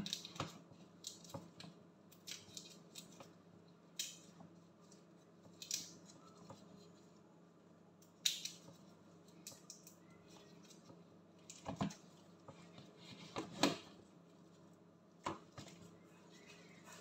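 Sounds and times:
shrimp shells crackling and snapping: 5.5 - 6.1, 8.2 - 8.7.

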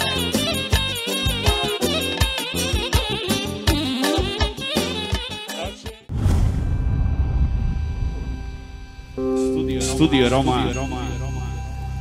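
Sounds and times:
deep cinematic boom: 6.1 - 9.3.

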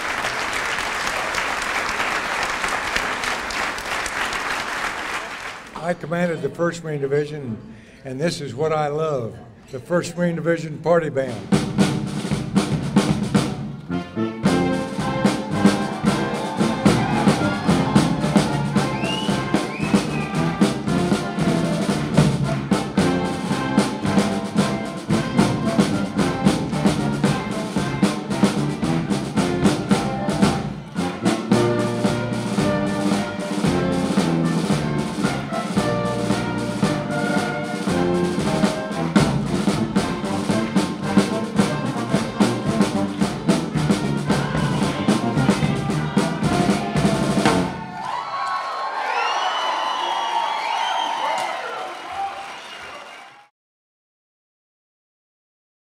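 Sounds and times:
brass band playing up-tempo: 9.8 - 48.0.

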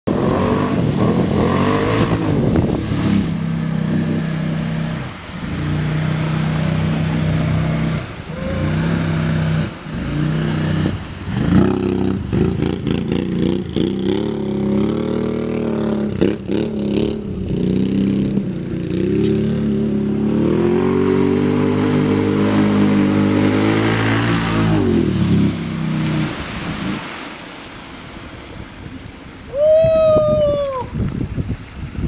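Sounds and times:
atv engine revving: 0.1 - 27.1
water spray splashing from tires: 0.8 - 15.9, 20.5 - 29.5.

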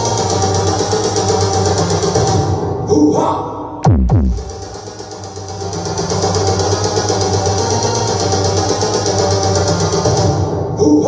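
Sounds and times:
falling bass sweep: 3.8 - 4.8
electronic dance music: 3.8 - 10.3.

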